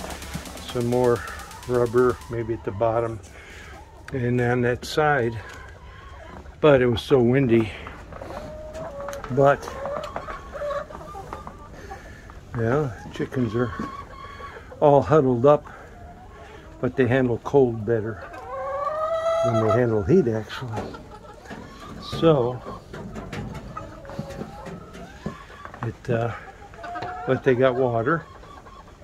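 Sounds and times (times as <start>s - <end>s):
chickens clucking: 0.0s - 29.0s
hens giving soft low calls: 0.0s - 29.0s.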